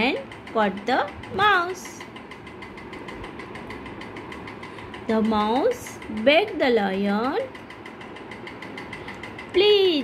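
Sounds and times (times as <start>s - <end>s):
machine running with fast pulse: 0.0s - 10.0s.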